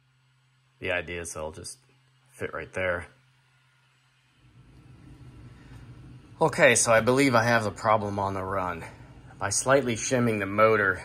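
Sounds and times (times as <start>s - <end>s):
electric motor low hum: 0.0s - 11.0s.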